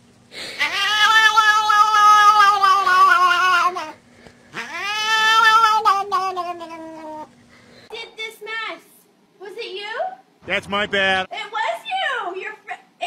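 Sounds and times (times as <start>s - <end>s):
cat yowling: 0.5s - 4.0s, 4.6s - 7.3s.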